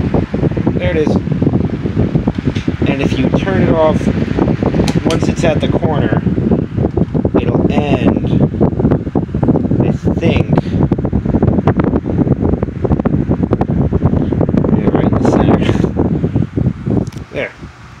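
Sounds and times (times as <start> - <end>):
desk fan air buffeting microphone: 0.0 - 18.0.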